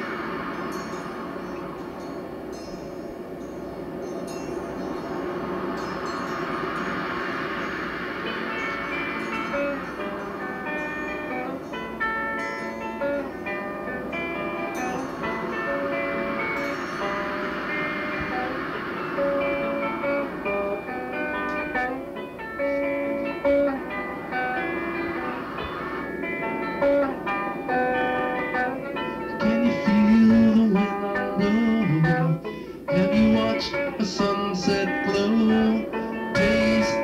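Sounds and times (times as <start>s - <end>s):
guitar sustained notes: 0.0s - 37.0s
rock band tape recording: 0.0s - 37.0s.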